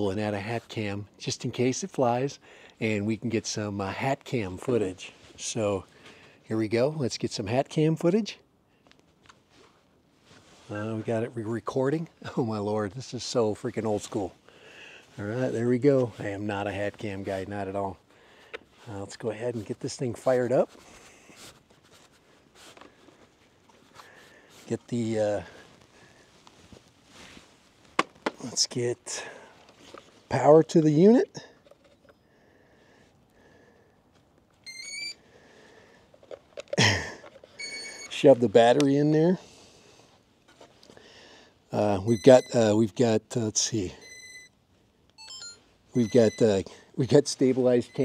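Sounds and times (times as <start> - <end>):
steady high electronic beep: 37.6 - 38.1, 45.2 - 46.6, 47.8 - 48.0.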